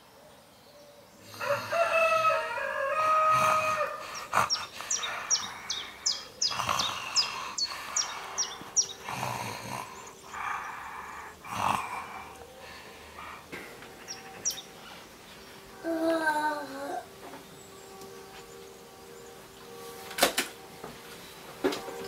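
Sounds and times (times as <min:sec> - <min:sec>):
rooster crowing: 0:01.3 - 0:09.3
small bird chirping: 0:04.1 - 0:12.4, 0:13.9 - 0:15.7.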